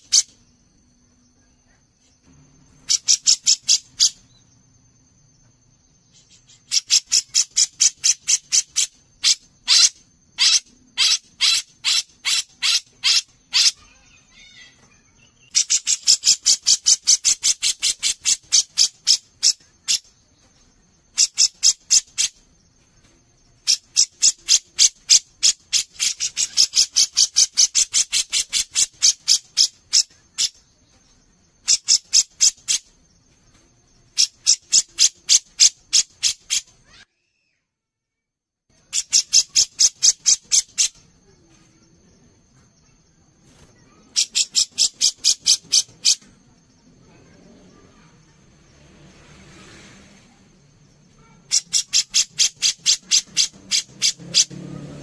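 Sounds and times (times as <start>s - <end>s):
bulbul rattling song: 0.0s - 37.0s, 38.7s - 48.9s, 51.0s - 55.0s.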